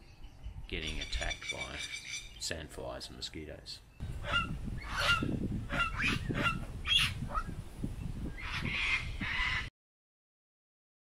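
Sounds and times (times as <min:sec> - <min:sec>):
birds calling: 0:00.0 - 0:07.5, 0:08.2 - 0:09.7.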